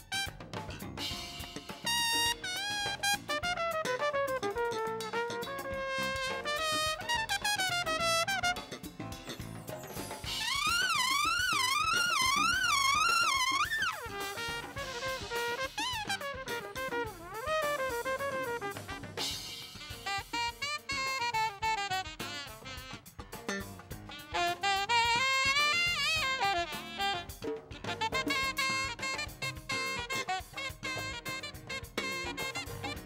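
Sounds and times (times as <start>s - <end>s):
trumpet solo: 0.0s - 0.8s, 1.8s - 9.1s, 10.2s - 33.0s
drum kit: 0.0s - 33.0s
hand drums: 0.0s - 33.0s.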